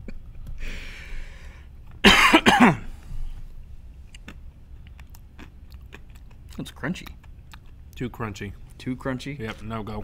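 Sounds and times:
breathy hiss: 0:00.6 - 0:01.7
man coughing: 0:02.0 - 0:03.0.

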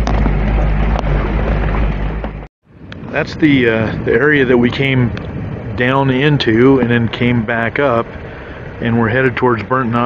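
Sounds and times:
vehicle rumbling over bumpy dirt road: 0:00.0 - 0:10.0.

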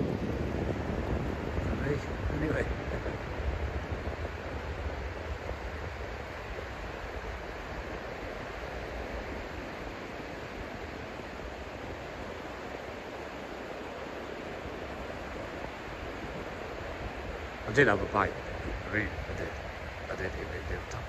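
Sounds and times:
surf breaking on beach: 0:00.0 - 0:21.0
wind rumble on microphone: 0:00.0 - 0:21.0.

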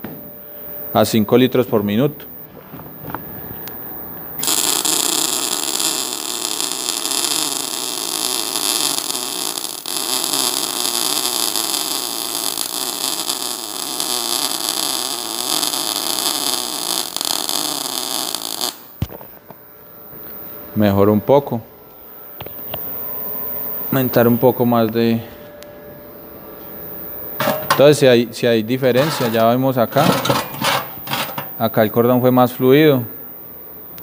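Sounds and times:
welding arc crackling: 0:04.4 - 0:19.2, 0:27.2 - 0:28.0, 0:28.8 - 0:32.0.

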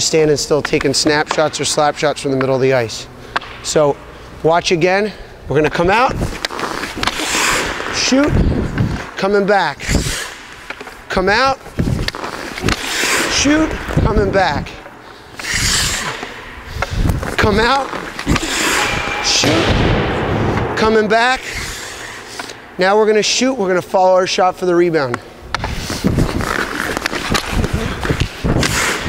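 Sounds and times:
skate blades scraping on ice: 0:06.2 - 0:13.8, 0:15.3 - 0:19.6, 0:21.4 - 0:22.6, 0:25.6 - 0:29.0
stick clacking on puck: 0:10.1 - 0:11.0, 0:26.5 - 0:29.0.

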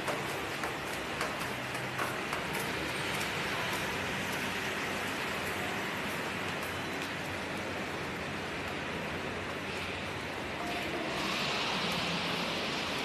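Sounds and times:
rushing hiss: 0:10.8 - 0:13.0.

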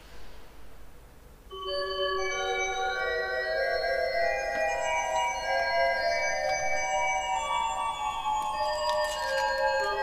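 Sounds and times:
pipe organ chords: 0:01.5 - 0:10.0.

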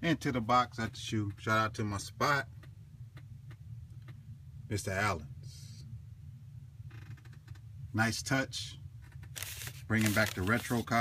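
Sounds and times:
low steady hum: 0:00.0 - 0:11.0
paper rustling: 0:09.3 - 0:11.0.

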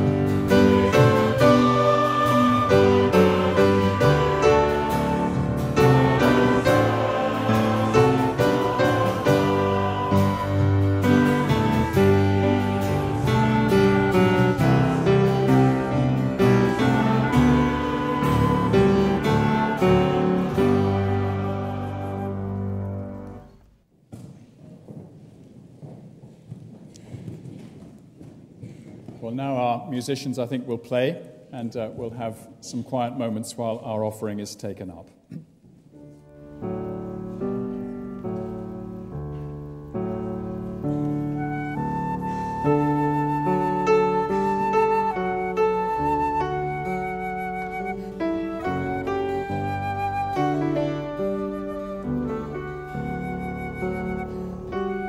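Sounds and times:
congregation singing a hymn: 0:00.0 - 0:23.5
woodwind melody: 0:00.0 - 0:23.7, 0:36.0 - 0:55.0
piano chords: 0:00.0 - 0:23.9, 0:35.9 - 0:55.0
people rustling and shuffling: 0:04.9 - 0:30.3, 0:35.1 - 0:55.0.

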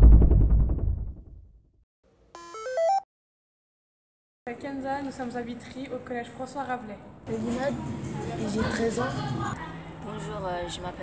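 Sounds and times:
deep drum hit: 0:00.0 - 0:01.4
rising electronic jingle tones: 0:02.4 - 0:03.1.

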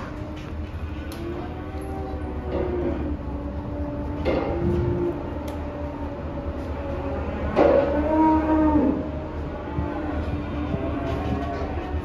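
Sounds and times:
calf mooing: 0:07.0 - 0:12.0.

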